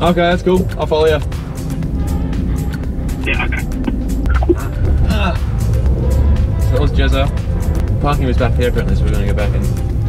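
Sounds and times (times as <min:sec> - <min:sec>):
car engine and road drone: 0:00.0 - 0:10.0
music playing: 0:00.0 - 0:10.0.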